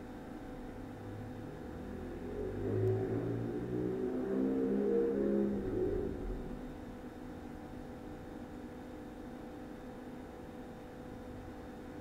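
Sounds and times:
motor vehicle passing: 1.5s - 6.8s.

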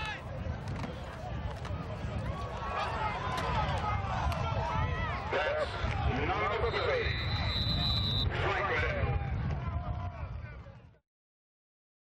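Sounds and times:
referee's whistle: 6.5s - 8.4s.

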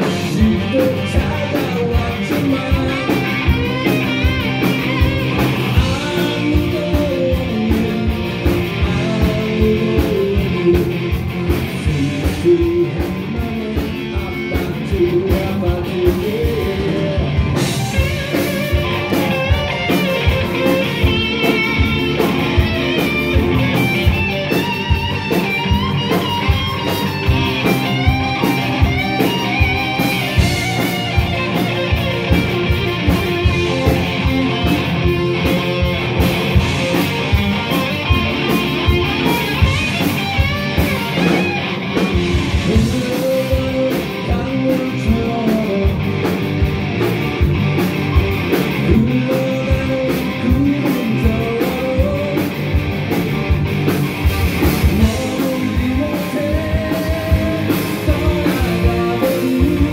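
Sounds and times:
live rock band playing: 0.0s - 59.9s
wavering high lead guitar line: 0.0s - 59.9s.

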